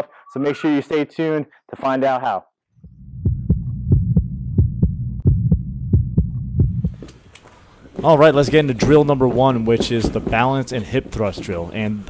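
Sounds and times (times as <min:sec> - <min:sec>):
quick deep thumps: 0:02.8 - 0:07.1
low hum: 0:02.8 - 0:07.8.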